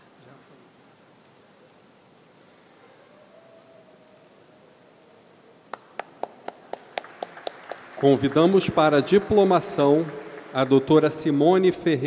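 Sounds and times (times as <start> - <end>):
large hall hum: 0.0 - 12.0
people clapping: 5.7 - 12.0.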